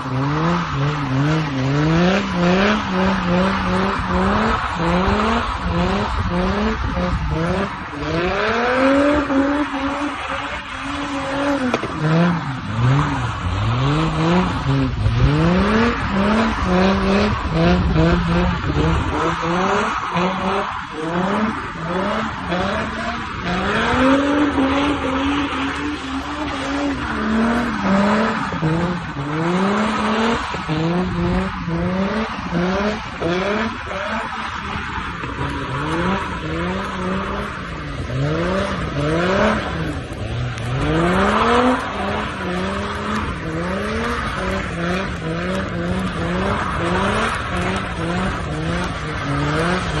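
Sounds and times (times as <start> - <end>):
car engine revving: 0.0 - 50.0.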